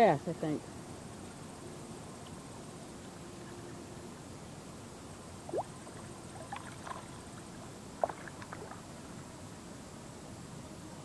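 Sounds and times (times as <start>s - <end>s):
small water splashes: 5.5s - 8.9s.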